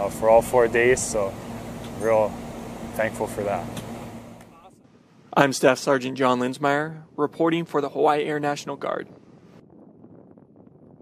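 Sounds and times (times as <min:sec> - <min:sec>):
low wind rumble on microphone: 0:00.0 - 0:05.4, 0:07.4 - 0:11.0.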